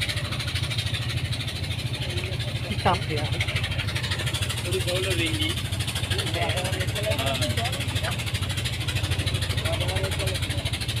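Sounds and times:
engine idling with low thudding: 0.0s - 11.0s
faint voices talking: 1.2s - 11.0s.

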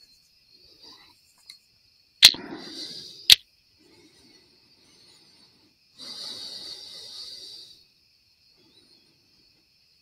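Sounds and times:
sharp clicks: 2.2s - 2.4s.

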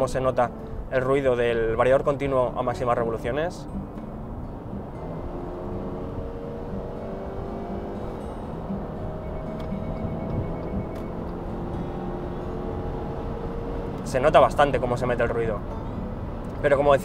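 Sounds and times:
car engine at high revs: 4.2s - 16.6s.

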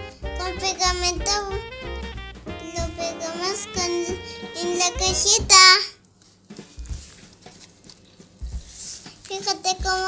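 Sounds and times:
cardboard handling noise: 6.1s - 9.5s.

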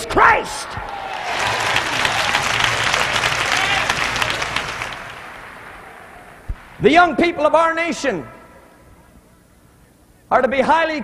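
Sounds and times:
large crowd applauding: 0.8s - 6.4s.

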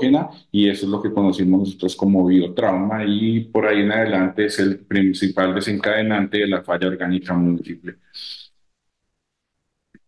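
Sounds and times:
person breathing: 8.0s - 8.5s.

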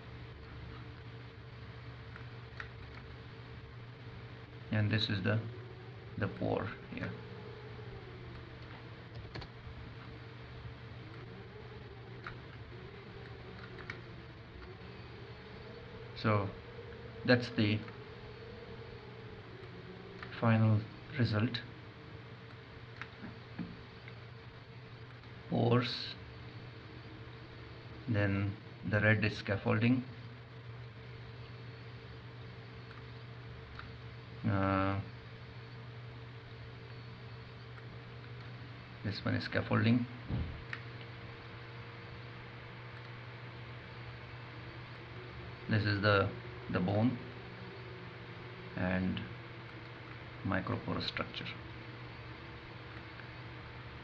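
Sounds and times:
low electrical hum: 0.0s - 54.0s.

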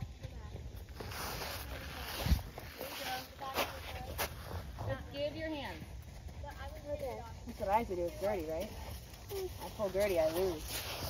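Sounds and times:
horse hoofbeats on sand: 0.0s - 11.0s.

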